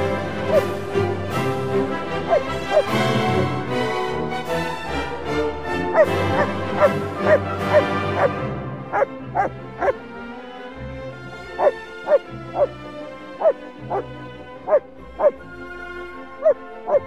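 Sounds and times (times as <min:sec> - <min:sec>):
background music: 0:00.0 - 0:17.0
dog yelping barks: 0:07.3 - 0:08.3, 0:08.9 - 0:10.0, 0:11.6 - 0:12.7, 0:13.4 - 0:14.0, 0:14.7 - 0:15.3, 0:16.4 - 0:17.0.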